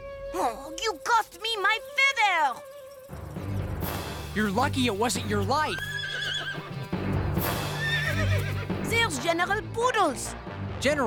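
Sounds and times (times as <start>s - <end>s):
background music: 0.0s - 11.0s
horse whinnying: 5.7s - 6.9s, 7.6s - 8.8s.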